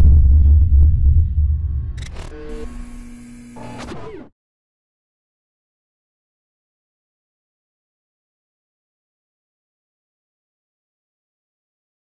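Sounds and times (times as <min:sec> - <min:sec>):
held low electronic tone: 0:00.0 - 0:04.2.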